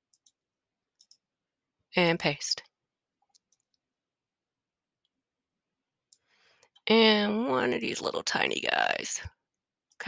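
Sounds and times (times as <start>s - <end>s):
computer mouse clicks: 0.1s - 0.4s, 1.0s - 1.3s, 3.2s - 3.8s.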